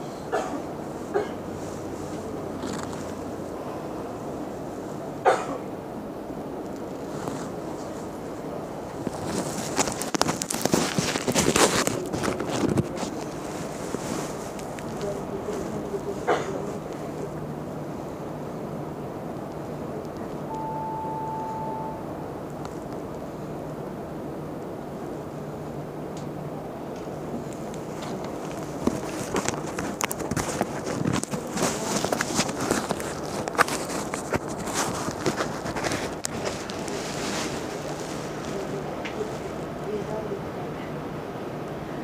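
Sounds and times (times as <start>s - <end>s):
bus engine hum: 0.0s - 10.2s, 11.9s - 42.0s
beep: 20.5s - 22.2s.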